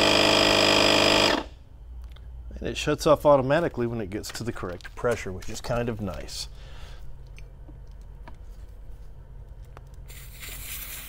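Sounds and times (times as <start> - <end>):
low steady hum: 0.0 - 11.0
air hissing from valve: 10.1 - 11.0.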